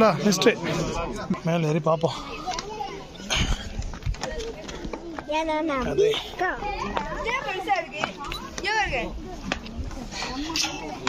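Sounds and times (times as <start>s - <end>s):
children's voices: 1.8s - 11.0s.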